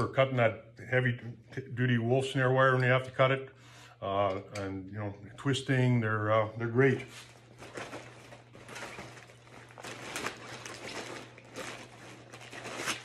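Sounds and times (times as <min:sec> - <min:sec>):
backpack rustling and crinkling: 0:07.0 - 0:13.0.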